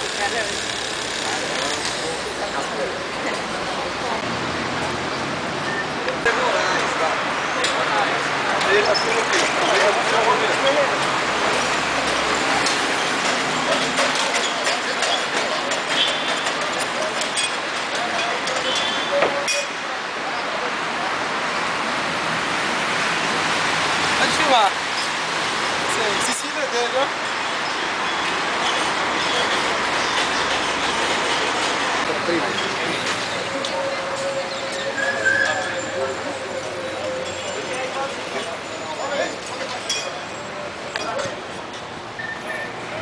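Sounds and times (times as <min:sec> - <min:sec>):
traffic noise: 0:00.0 - 0:43.0
indistinct voices: 0:22.6 - 0:43.0.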